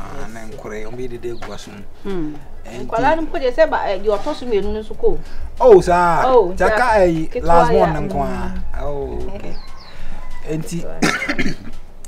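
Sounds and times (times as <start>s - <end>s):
voices talking: 0.0s - 11.7s.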